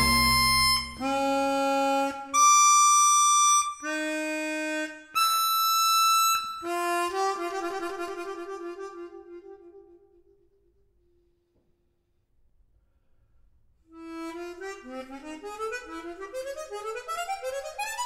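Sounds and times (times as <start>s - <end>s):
orchestral chord: 0.0s - 1.0s
harmonica playing held notes: 0.0s - 9.9s, 14.0s - 18.0s.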